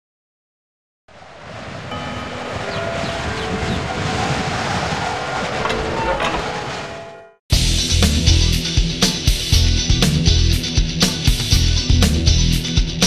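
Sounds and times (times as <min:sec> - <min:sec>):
rushing noise with held tones: 0:01.1 - 0:07.2.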